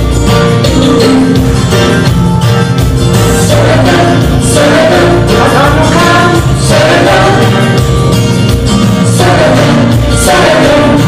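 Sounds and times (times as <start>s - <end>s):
instrumental accompaniment: 0.0s - 11.0s
group of voices singing: 3.1s - 11.0s.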